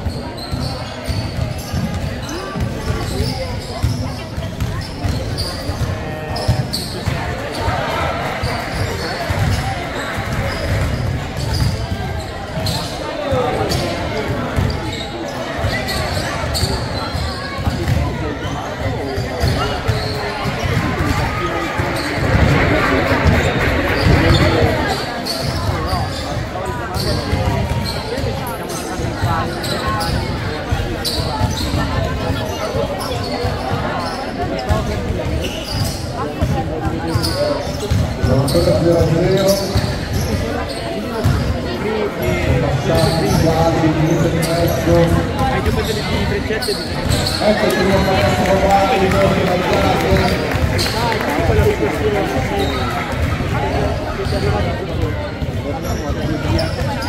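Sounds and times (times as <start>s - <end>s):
chatter of players and spectators: 0.0s - 57.0s.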